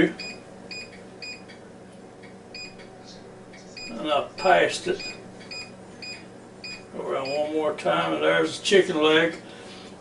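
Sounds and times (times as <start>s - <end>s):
control panel beeping: 5.0s - 7.4s.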